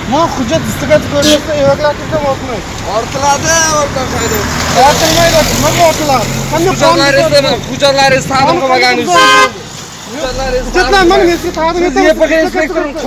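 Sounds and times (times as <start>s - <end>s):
men talking loudly: 0.0s - 13.0s
car horn toot: 9.0s - 9.6s.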